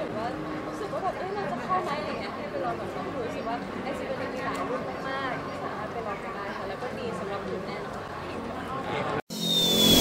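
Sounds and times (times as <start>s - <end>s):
interview speech: 0.0s - 9.2s
logo swoosh with high tone: 9.3s - 10.0s.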